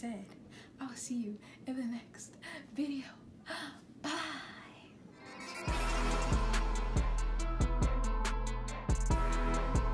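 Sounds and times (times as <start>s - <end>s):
music with bass and drum beat: 5.5s - 9.9s.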